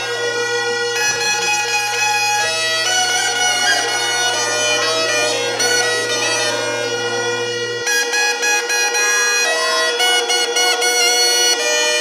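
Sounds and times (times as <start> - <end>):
bagpipe tune over drone: 0.0 - 12.0.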